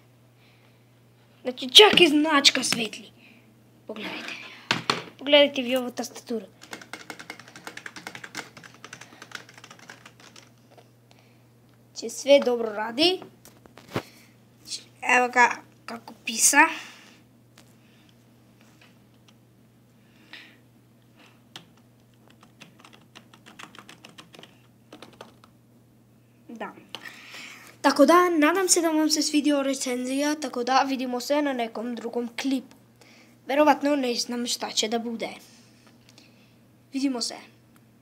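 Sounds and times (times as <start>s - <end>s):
keyboard keys typing: 6.6s - 10.6s, 21.5s - 25.5s.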